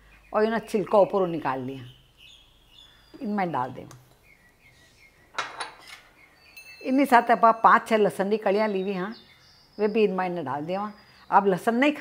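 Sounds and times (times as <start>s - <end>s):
kitchenware clinking: 5.4s - 6.1s.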